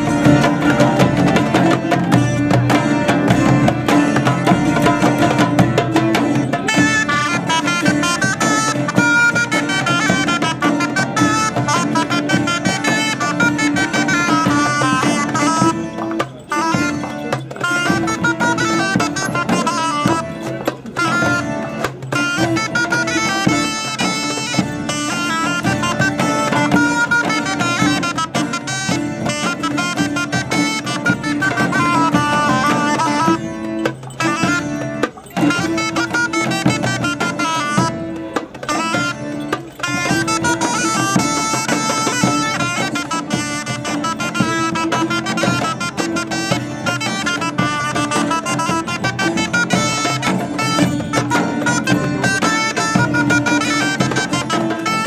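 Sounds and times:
buzzing reed pipe melody: 0.0s - 55.0s
folk ensemble playing: 0.0s - 55.0s
hand drums: 0.0s - 55.0s.

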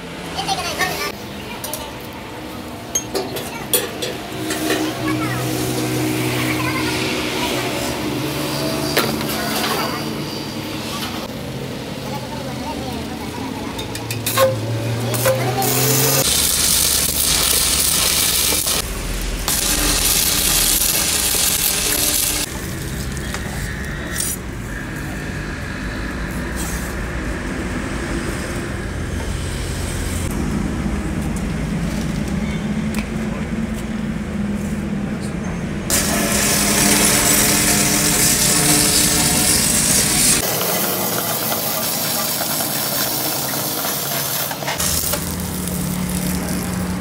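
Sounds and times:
welding arc crackling and hissing: 4.2s - 11.3s, 14.3s - 25.1s, 35.9s - 47.0s.

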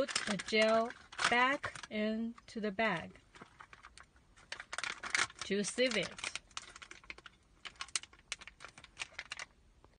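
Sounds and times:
plastic packet crinkling: 0.0s - 9.6s.

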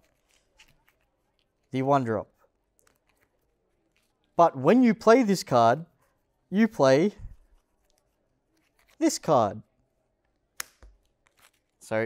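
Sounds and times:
soft taps and rustles of cards: 0.0s - 1.7s, 2.4s - 4.4s, 7.2s - 9.1s, 10.2s - 11.8s
card snap: 10.6s - 11.0s.

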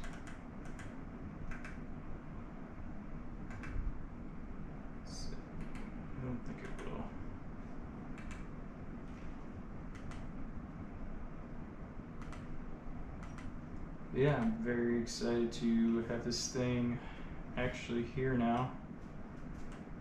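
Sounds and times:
low room hum: 0.0s - 20.0s.

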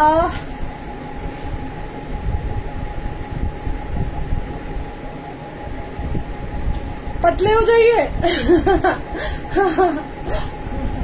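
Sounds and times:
background hum with low rumble: 0.0s - 11.0s.

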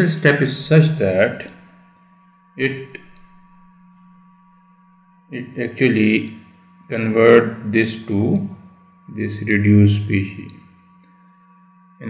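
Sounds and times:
low electrical hum: 0.0s - 12.0s
thin high whine: 0.0s - 12.0s.

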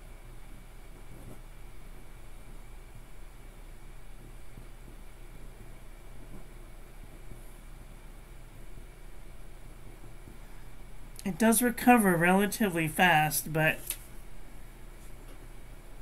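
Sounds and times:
room tone hum and hiss: 0.0s - 16.0s.

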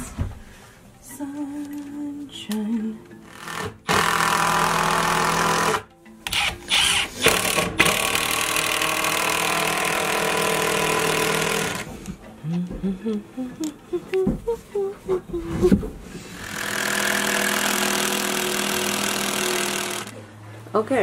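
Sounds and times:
power drill driving screws: 3.3s - 11.9s, 16.4s - 20.1s.

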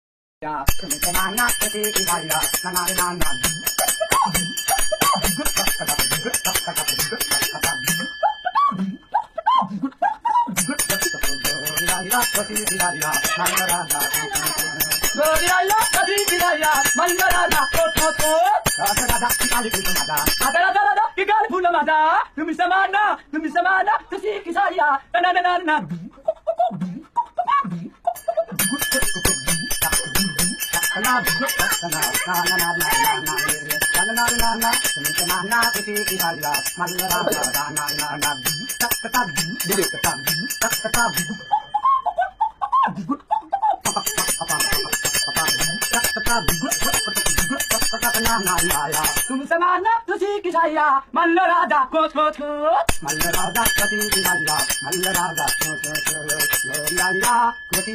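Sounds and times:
repeating vocal sound: 0.4s - 21.0s, 25.4s - 41.8s
person speaking: 0.4s - 26.9s, 27.6s - 42.1s, 42.9s - 51.0s
bell rung rapidly: 0.6s - 9.3s, 10.5s - 21.0s, 28.1s - 42.4s, 43.8s - 49.5s, 52.9s - 57.9s.

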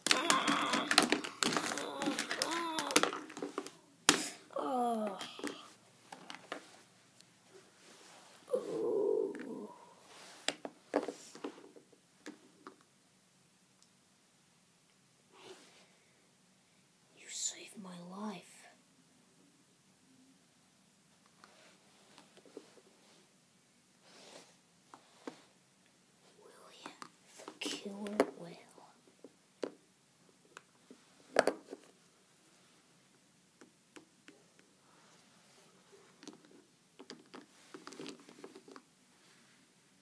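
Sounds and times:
person growling: 0.0s - 3.1s, 8.5s - 10.0s
person whispering: 0.0s - 3.2s, 4.4s - 5.8s, 8.4s - 10.0s, 17.1s - 18.8s, 26.2s - 29.1s.

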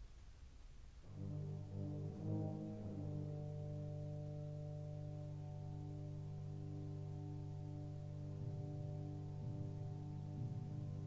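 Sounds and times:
faint hiss and rumble: 0.0s - 11.0s
orchestral chord: 1.1s - 11.0s.

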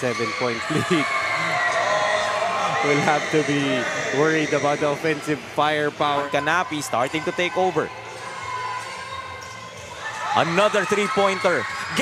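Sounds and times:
gym hall crowd noise: 0.0s - 12.0s.

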